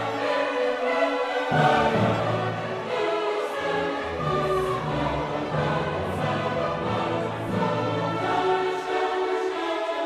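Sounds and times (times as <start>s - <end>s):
choir singing long held notes: 0.0s - 10.0s.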